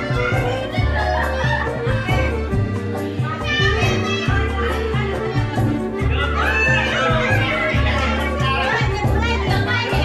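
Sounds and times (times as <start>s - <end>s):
crowd chatter: 0.0s - 10.0s
music with repeating bass line: 0.0s - 10.0s.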